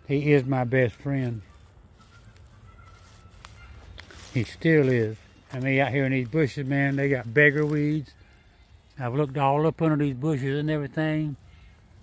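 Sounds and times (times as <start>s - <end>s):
footsteps through grass: 0.1s - 12.0s.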